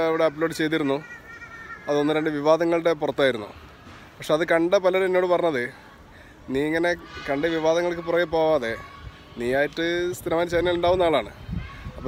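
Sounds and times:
man talking: 0:00.0 - 0:01.1, 0:01.9 - 0:03.6, 0:04.2 - 0:05.8, 0:06.5 - 0:08.8, 0:09.4 - 0:11.4.

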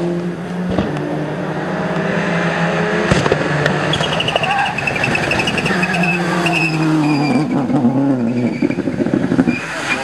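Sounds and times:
car skidding and scrabbling: 0:00.0 - 0:10.0
car engine braking: 0:03.0 - 0:10.0.

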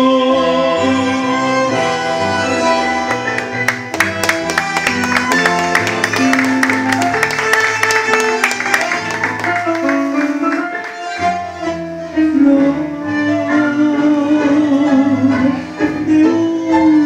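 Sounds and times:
tango orchestra playing: 0:00.0 - 0:17.0.

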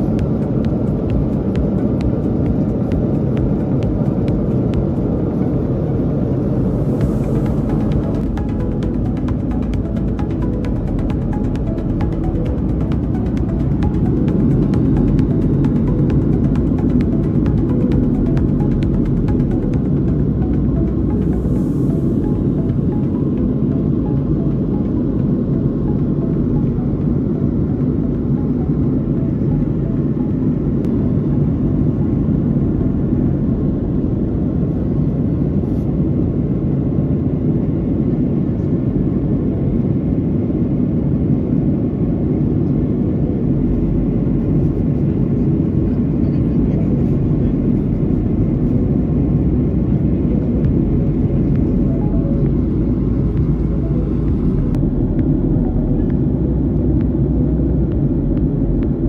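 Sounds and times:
airliner cabin jet engine rumble: 0:00.0 - 0:59.0.

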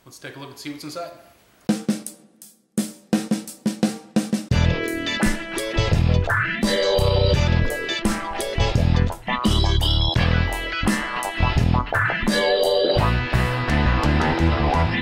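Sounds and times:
drums: 0:01.4 - 0:15.0
bass and electric guitar: 0:04.5 - 0:15.0.

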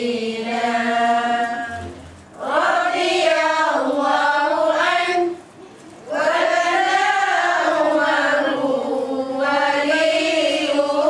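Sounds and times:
women chanting in unison: 0:00.0 - 0:01.8, 0:02.4 - 0:05.4, 0:06.1 - 0:11.0.

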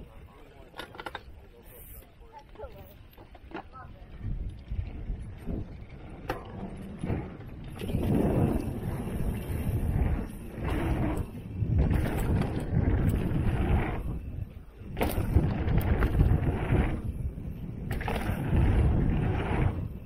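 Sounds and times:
tyres rolling over dirt: 0:00.0 - 0:20.0
bike knocks and rattles: 0:02.6 - 0:20.0
wind buffeting microphone: 0:03.8 - 0:20.0.

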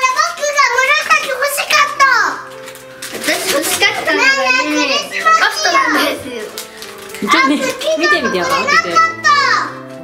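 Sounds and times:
children talking: 0:00.0 - 0:09.8
background music with held notes: 0:00.0 - 0:10.0.

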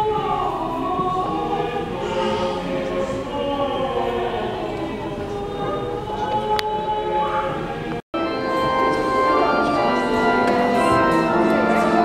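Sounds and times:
choir singing long notes: 0:00.0 - 0:12.0.

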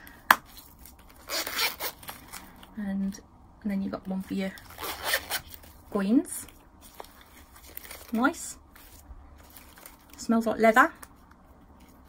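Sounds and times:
purse zipper being pulled open: 0:01.2 - 0:02.0, 0:04.7 - 0:05.4.

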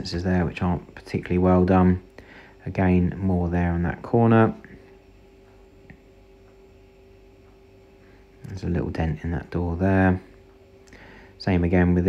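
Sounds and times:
faint steady tone: 0:00.0 - 0:12.0
quiet background hum: 0:00.0 - 0:12.0.

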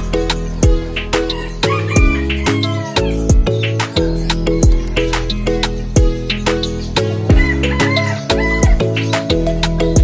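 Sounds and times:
background music with steady beat: 0:00.0 - 0:10.0
rooster crowing: 0:01.3 - 0:03.2, 0:07.3 - 0:08.8.

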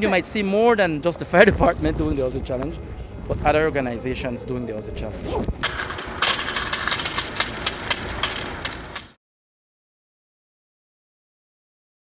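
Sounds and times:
fire hose spraying water: 0:05.6 - 0:09.2.

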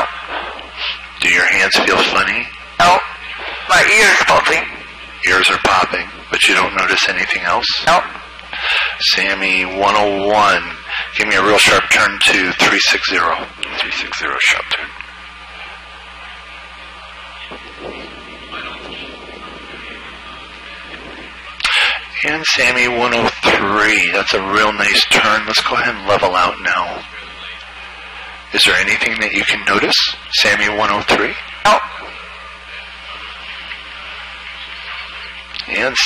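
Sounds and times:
person speaking: 0:00.0 - 0:15.0, 0:17.2 - 0:32.2
steady hiss: 0:00.0 - 0:36.0
steady low hum: 0:00.0 - 0:36.0.

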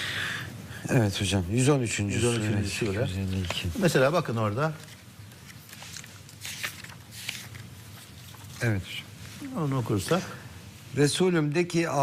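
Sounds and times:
faint paper rustling: 0:02.0 - 0:11.0.

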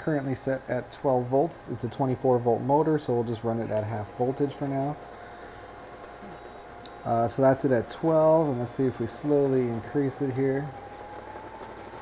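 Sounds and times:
electric motor quiet whir: 0:00.0 - 0:12.0.

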